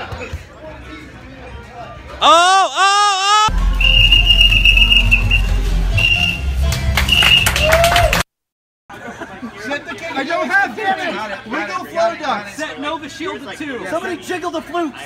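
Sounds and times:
high steady whistle-like tone: 3.7s - 6.4s
people talking over one another: 9.2s - 15.0s.

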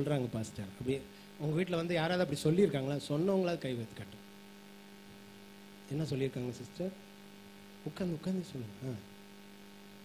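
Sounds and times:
faint mains hum: 0.0s - 10.0s.

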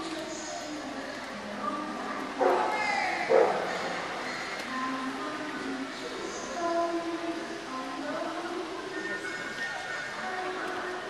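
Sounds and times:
crowd murmur in large hall: 0.0s - 11.0s
dog barking: 2.4s - 2.7s, 3.3s - 3.7s.

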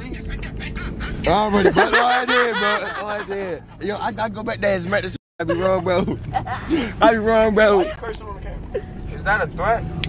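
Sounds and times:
voices talking: 0.0s - 9.8s
young men laughing: 1.0s - 9.1s.

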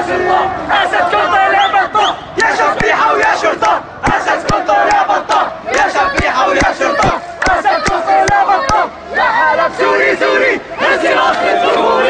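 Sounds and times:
crowd chanting slogans: 0.0s - 12.0s
rhythmic handclaps: 2.4s - 8.8s.

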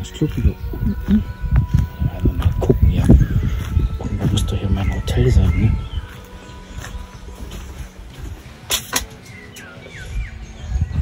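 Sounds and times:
steady low rumble: 0.0s - 8.7s
bird chirping: 0.0s - 11.0s.

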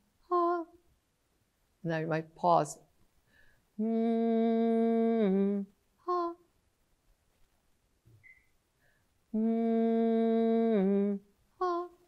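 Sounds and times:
woman humming: 3.8s - 6.4s, 9.3s - 12.0s.

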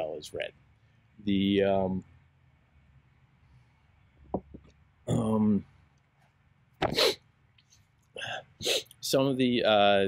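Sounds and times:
man sneezing: 6.8s - 7.2s, 8.6s - 8.9s.

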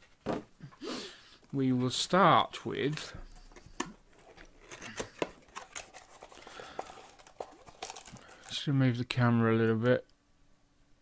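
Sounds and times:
cardboard rustling and scraping: 3.4s - 8.6s.

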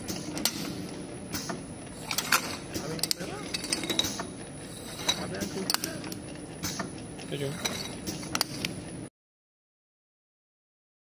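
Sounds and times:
capping machine whirring: 0.0s - 9.1s.

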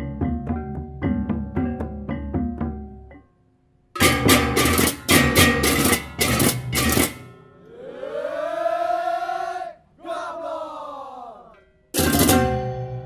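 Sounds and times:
gamelan cymbals and metal percussion: 4.0s - 7.7s, 11.8s - 13.0s
long vocal call: 7.6s - 11.6s.

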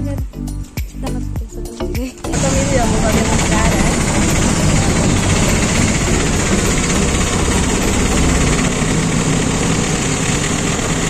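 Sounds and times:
auto-rickshaw engine rumbling: 2.3s - 11.0s.

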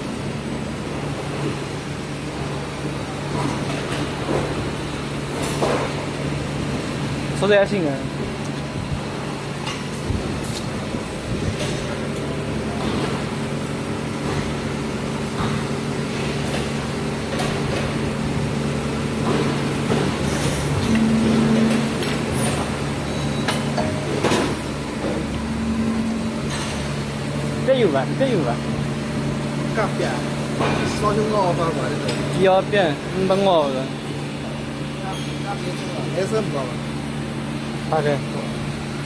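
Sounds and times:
injection molding machine hum: 0.0s - 39.0s.

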